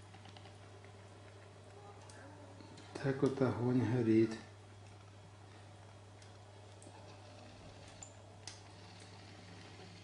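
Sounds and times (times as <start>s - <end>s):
fire crackling in metal stove: 0.0s - 10.0s
steady low hum: 0.0s - 10.0s.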